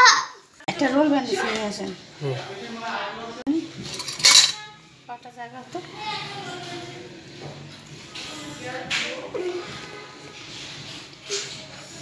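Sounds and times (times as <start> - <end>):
metal instruments clattering on tray: 3.8 - 4.7.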